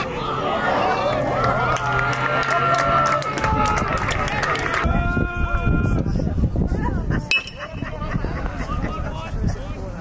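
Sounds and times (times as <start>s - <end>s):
voices of people: 0.0s - 10.0s
bat hitting ball ping: 7.3s - 7.6s.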